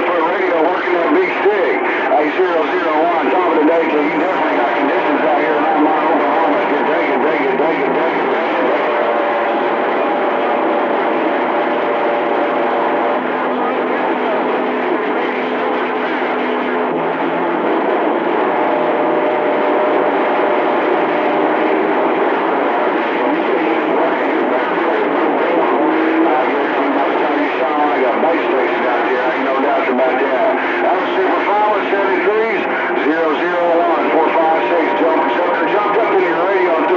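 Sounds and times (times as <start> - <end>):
faint garbled voices: 0.0 - 36.9
radio static rush: 0.0 - 36.9.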